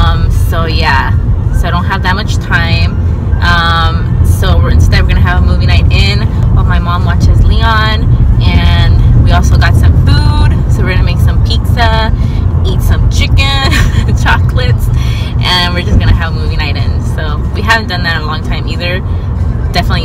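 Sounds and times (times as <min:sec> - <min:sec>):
woman talking: 0:00.0 - 0:19.0, 0:19.7 - 0:20.0
car cabin rumble: 0:00.0 - 0:20.0.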